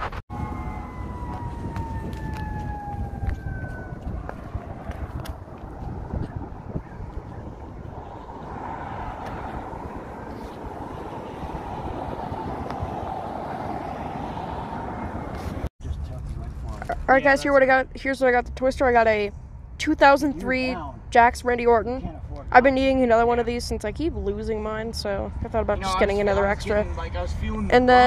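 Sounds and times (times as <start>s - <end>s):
wind buffeting microphone: 0.0s - 16.8s
rushing of passing traffic: 0.0s - 28.0s
street traffic rumble: 0.0s - 28.0s
distant siren wail: 0.1s - 15.7s.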